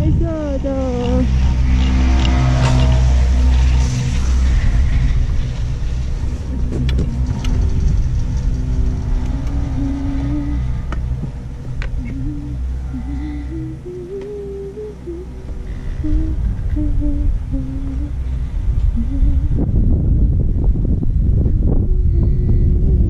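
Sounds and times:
wind rumble on microphone: 0.0s - 23.0s
person humming: 9.3s - 11.0s, 11.9s - 18.2s, 18.9s - 19.8s, 21.7s - 23.0s.

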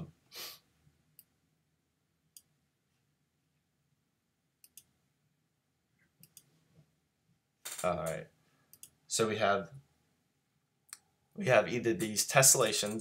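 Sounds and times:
computer clicks: 4.6s - 4.9s, 6.2s - 6.5s, 7.7s - 9.0s, 12.8s - 13.0s
man speaking: 7.7s - 8.3s, 9.1s - 9.8s, 11.4s - 13.0s.

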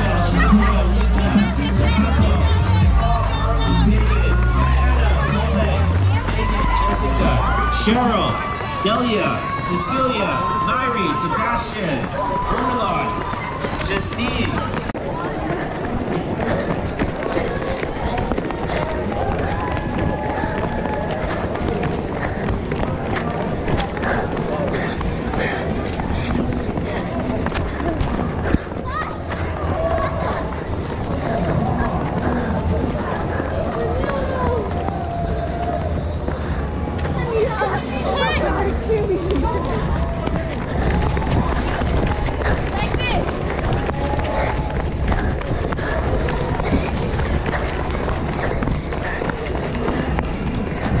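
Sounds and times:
children calling and chattering: 0.0s - 51.0s
children running on asphalt: 0.0s - 51.0s.

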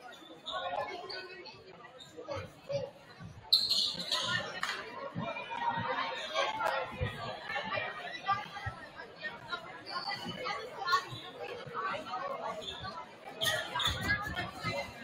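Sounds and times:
spectators talking: 0.0s - 15.0s.

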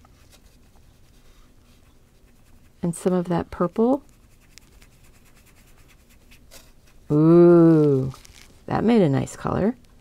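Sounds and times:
paintbrush scratching on a palette: 0.4s - 7.1s.

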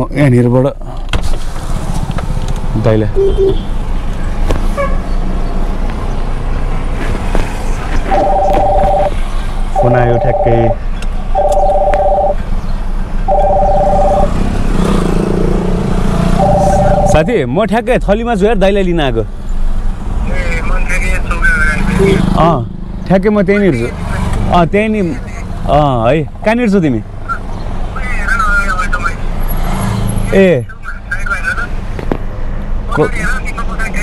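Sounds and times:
car running: 0.0s - 34.0s
street traffic: 0.0s - 34.0s
phone ringback tone: 8.1s - 9.1s, 9.8s - 10.8s, 11.4s - 12.4s, 13.3s - 14.3s, 16.4s - 17.2s.

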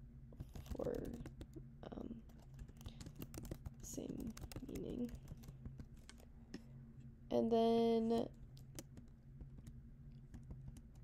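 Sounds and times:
faint low hum: 0.0s - 11.0s
computer keyboard keystrokes: 0.4s - 6.2s, 8.6s - 11.0s.

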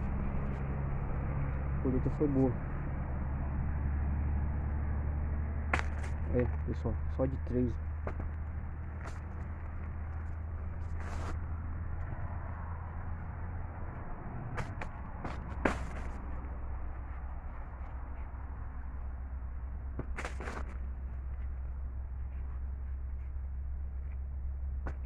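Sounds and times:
steady low rumble: 0.0s - 25.0s.

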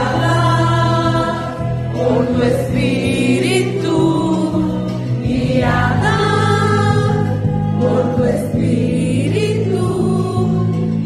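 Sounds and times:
choir singing worship song: 0.0s - 11.0s.

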